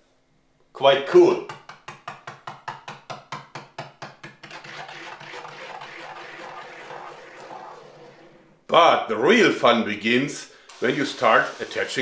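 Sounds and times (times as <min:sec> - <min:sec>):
spinning top on metal table: 0:04.4 - 0:08.5, 0:10.7 - 0:12.0.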